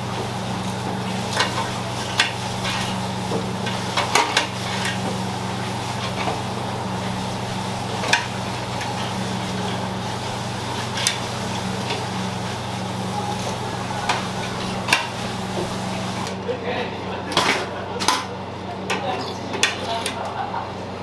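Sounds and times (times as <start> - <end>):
low machine hum: 0.0 - 21.0.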